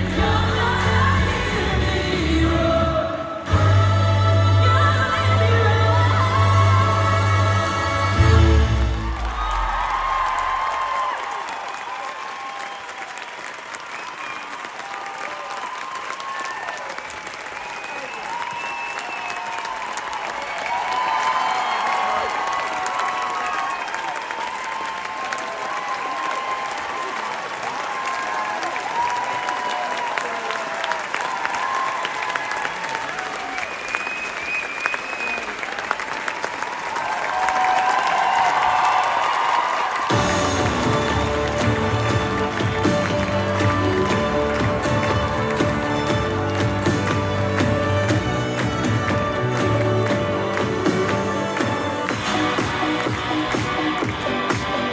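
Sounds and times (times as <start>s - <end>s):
audience applauding: 6.2s - 54.9s
voices cheering: 8.8s - 54.1s.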